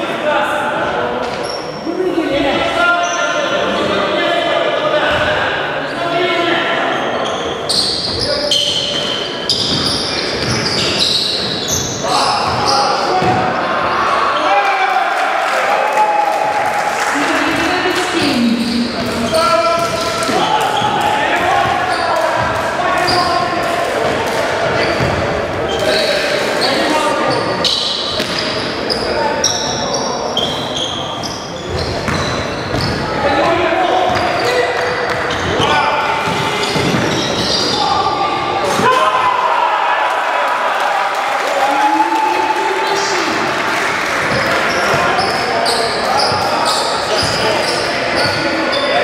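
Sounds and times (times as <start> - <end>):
players calling indistinctly: 0.8 - 49.0
shoe squeaks: 1.3 - 1.9, 6.9 - 13.0, 18.2 - 22.4, 25.7 - 38.1, 44.4 - 49.0.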